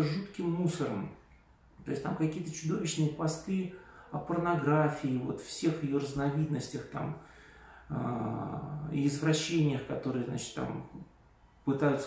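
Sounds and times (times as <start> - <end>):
man's drawn-out hesitation sound: 0.0 - 1.2.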